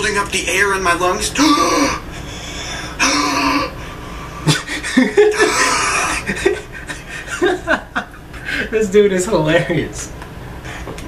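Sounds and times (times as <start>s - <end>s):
man gasping breaths: 2.1s - 3.1s
man chuckling: 4.4s - 8.6s.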